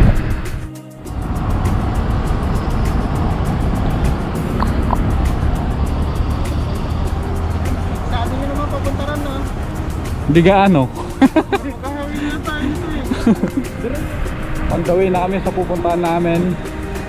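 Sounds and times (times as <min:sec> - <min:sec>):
roadside traffic rumble: 0:00.0 - 0:17.0.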